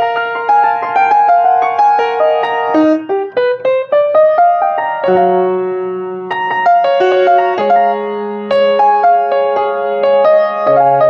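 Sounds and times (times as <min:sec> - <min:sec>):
piano notes climbing: 0:00.0 - 0:11.0.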